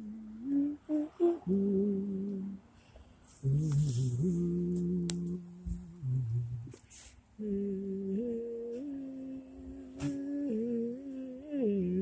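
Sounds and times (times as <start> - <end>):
person humming: 0.0 - 2.7, 3.3 - 12.0.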